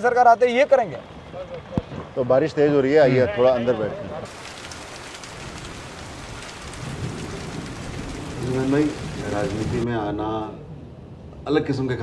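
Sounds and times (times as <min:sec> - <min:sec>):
heavy rain on asphalt: 0:04.2 - 0:09.8.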